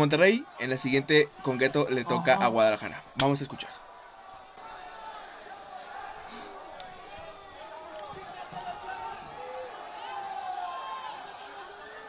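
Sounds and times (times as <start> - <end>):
audience shouting and chattering: 0.5 - 12.0.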